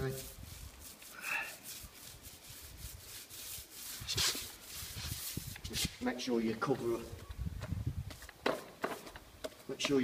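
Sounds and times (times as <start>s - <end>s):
paint roller rasping on wall: 0.0s - 6.0s.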